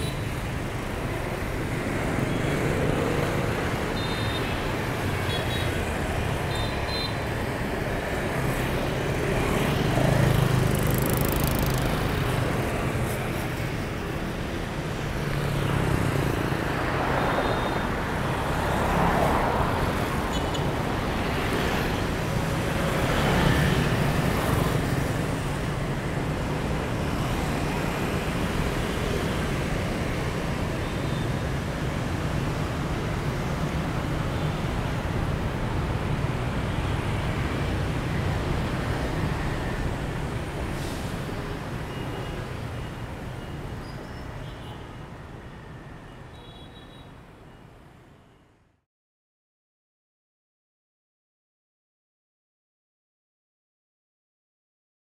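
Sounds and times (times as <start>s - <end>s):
motorbikes driving past: 8.2s - 13.1s.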